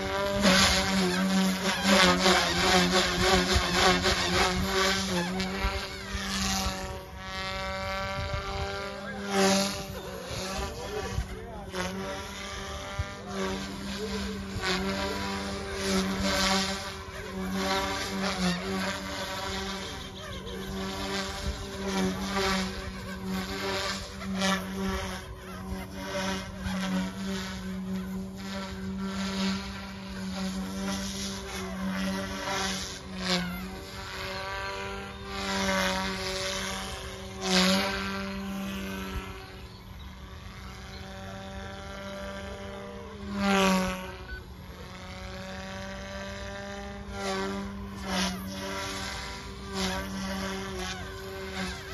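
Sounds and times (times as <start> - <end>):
rc helicopter motor drone: 0.0 - 51.9
rotor blades swishing: 0.0 - 51.9.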